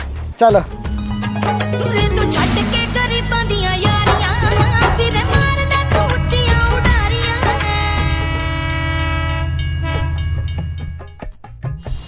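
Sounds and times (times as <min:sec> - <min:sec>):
moving train rumble: 0:02.1 - 0:11.2
train horn blast: 0:07.4 - 0:10.8.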